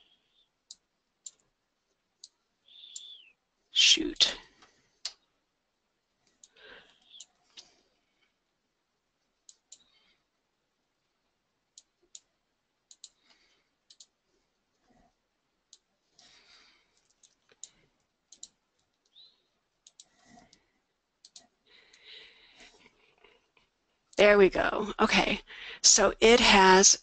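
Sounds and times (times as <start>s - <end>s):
computer mouse clicks: 0.6s - 1.4s, 9.4s - 9.9s, 11.7s - 14.8s, 15.7s - 16.3s, 16.9s - 19.2s, 19.8s - 22.0s.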